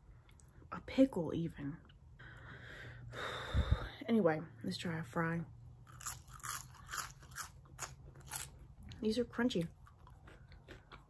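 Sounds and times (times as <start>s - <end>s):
person chewing crunchy fries: 5.8s - 11.0s.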